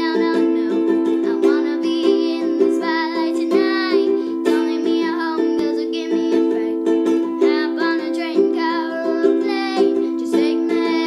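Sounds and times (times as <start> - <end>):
girl singing: 0.0 - 11.0
ukulele strumming chords: 0.0 - 11.0.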